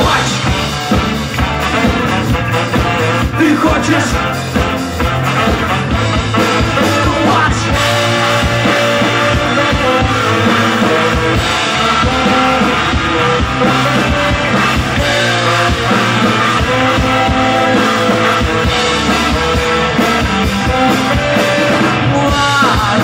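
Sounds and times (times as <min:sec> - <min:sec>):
drum kit: 0:00.0 - 0:23.0
electric guitar: 0:00.0 - 0:23.0
saxophone: 0:00.0 - 0:23.0
trumpet: 0:00.0 - 0:23.0.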